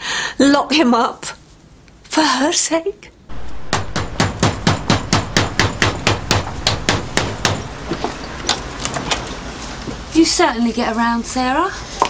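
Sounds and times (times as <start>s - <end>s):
knocking on a door: 3.7s - 7.7s.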